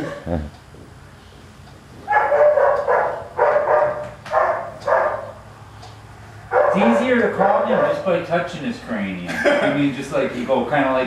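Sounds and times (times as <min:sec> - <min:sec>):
dog barking: 0:02.1 - 0:05.4, 0:06.5 - 0:08.1.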